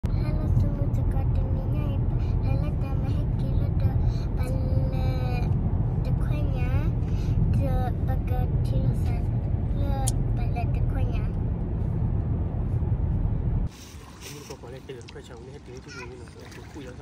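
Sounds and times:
car cabin road and engine rumble: 0.0s - 17.0s
child talking: 0.1s - 11.4s, 15.8s - 16.4s.

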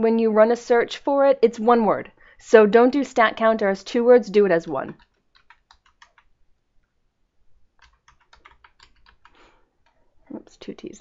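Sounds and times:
faint keyboard typing: 4.4s - 7.0s, 7.7s - 11.0s.

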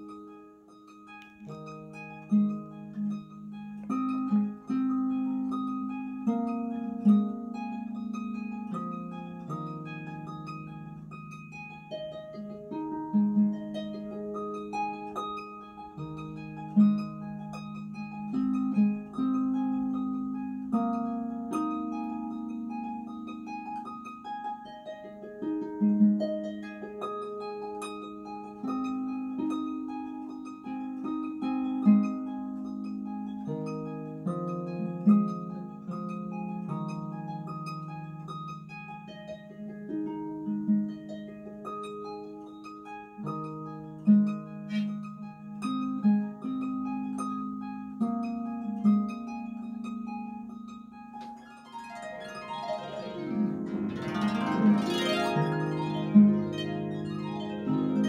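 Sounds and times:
harp melody: 0.0s - 58.0s.

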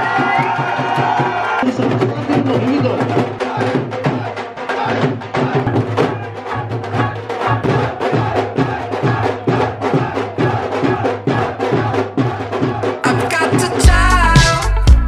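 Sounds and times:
dhol drums fast rhythm: 0.0s - 15.0s.

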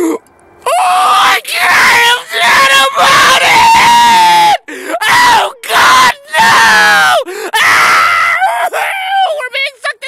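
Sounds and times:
man screaming: 0.6s - 10.0s.

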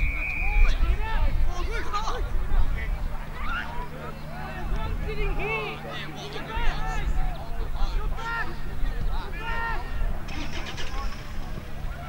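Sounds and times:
low uneven rumble: 0.0s - 12.0s
people shouting: 9.4s - 10.2s.

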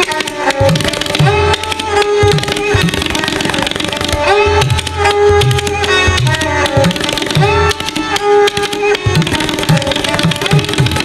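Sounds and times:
bowed string melody: 0.0s - 11.0s
tabla playing fast strokes: 0.0s - 11.0s.

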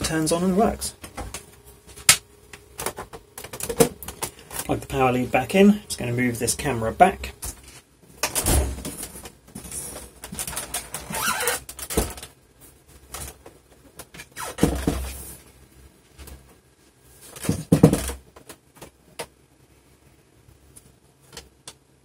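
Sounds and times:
cable handling rustles and scrapes: 8.9s - 17.7s.

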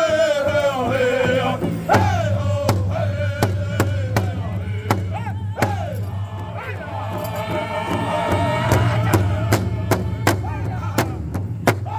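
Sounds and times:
group singing in high voices: 0.0s - 11.9s
large hide drum beats: 0.0s - 11.9s.

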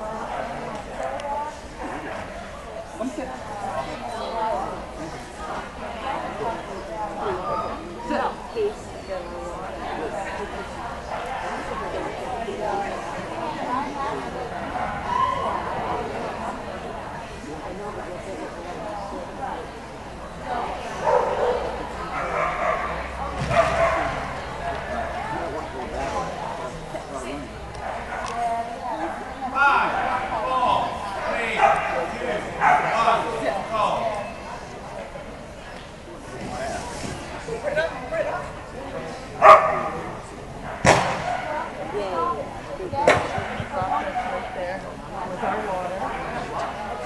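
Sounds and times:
people talking: 0.0s - 47.0s
people's voices: 0.0s - 47.0s
dog barking: 21.0s - 22.9s, 23.5s - 24.2s, 32.6s - 32.9s, 39.4s - 40.0s.

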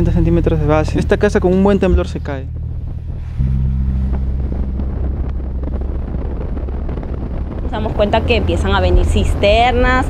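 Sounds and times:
truck engine droning: 0.0s - 10.0s
wind on microphone: 0.0s - 10.0s.

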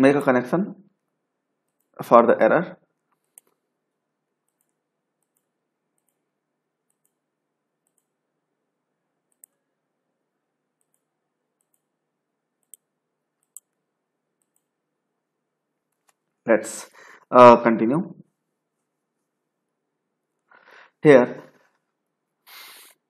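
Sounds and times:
computer mouse clicks: 1.7s - 2.0s, 3.1s - 3.6s, 4.4s - 6.3s, 6.9s - 7.2s, 7.8s - 8.2s, 9.3s - 9.6s, 10.8s - 11.9s, 12.6s - 13.8s, 14.4s - 14.7s
low hiss: 20.3s - 23.0s.

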